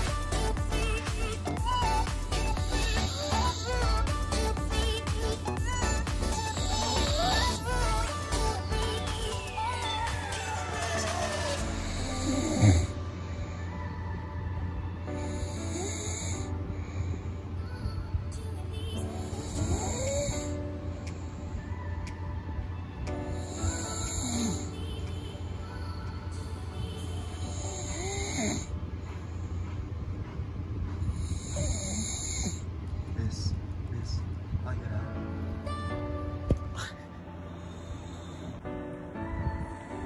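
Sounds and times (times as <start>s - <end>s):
man snoring: 1.8s - 5.0s, 5.8s - 8.5s, 11.0s - 13.0s, 15.3s - 16.5s, 19.3s - 20.5s, 23.4s - 24.7s, 27.5s - 28.7s, 31.2s - 32.6s.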